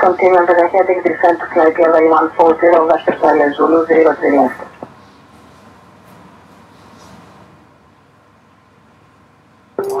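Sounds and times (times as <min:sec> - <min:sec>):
radio channel hiss: 0:00.0 - 0:04.8.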